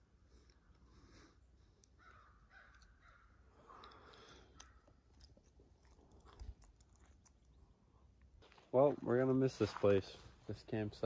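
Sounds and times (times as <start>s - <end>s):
faint forest ambience: 0.0s - 11.0s
faint bird calls: 0.4s - 5.2s.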